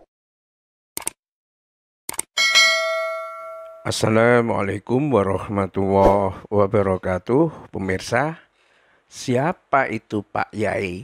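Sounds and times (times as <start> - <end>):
bright notification bell chime: 2.4 - 4.0.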